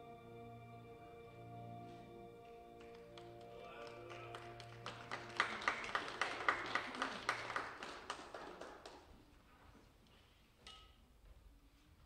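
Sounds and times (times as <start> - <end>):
held accompaniment chord: 0.0 - 6.6
congregation applauding: 2.3 - 9.2.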